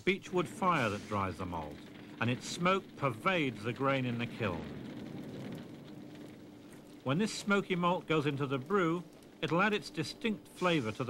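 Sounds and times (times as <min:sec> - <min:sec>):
faint steady hum: 0:00.0 - 0:11.0
wood fire crackling: 0:00.0 - 0:11.0.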